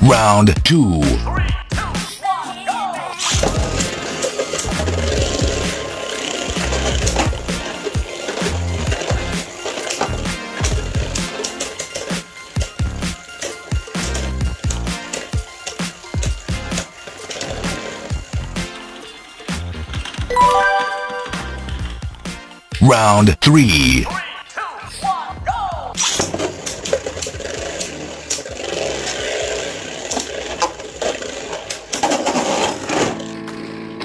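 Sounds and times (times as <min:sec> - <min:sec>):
background music: 0:00.0 - 0:26.2
spinning tops whirring: 0:03.3 - 0:19.6.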